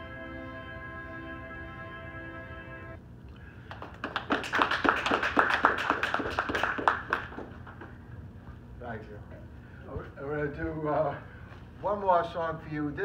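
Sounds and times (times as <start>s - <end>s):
audience clapping: 3.6s - 8.0s.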